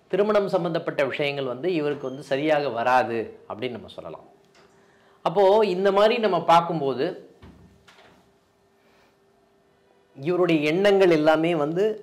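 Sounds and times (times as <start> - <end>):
faint steady hum: 0.0 - 12.0
man speaking: 0.1 - 4.4, 5.2 - 7.3, 10.2 - 12.0.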